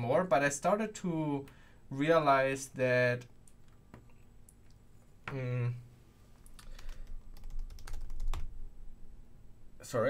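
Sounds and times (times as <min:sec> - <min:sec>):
computer keyboard typing: 0:06.4 - 0:08.5.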